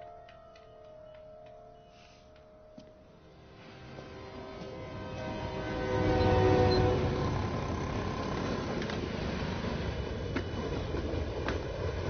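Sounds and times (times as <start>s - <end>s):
horn-like chord: 3.0s - 8.1s.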